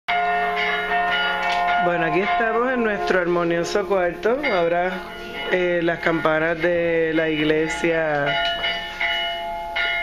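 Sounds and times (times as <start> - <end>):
church bells ringing: 0.1 - 10.0.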